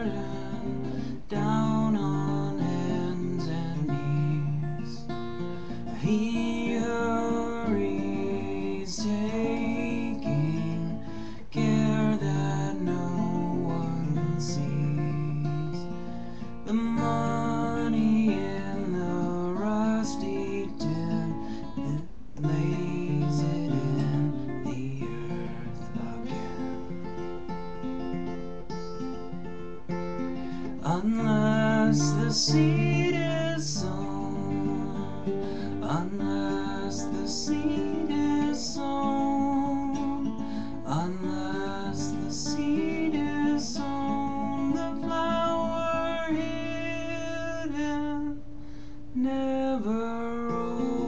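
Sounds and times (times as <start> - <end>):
fingerstyle acoustic guitar: 0.0 - 51.0.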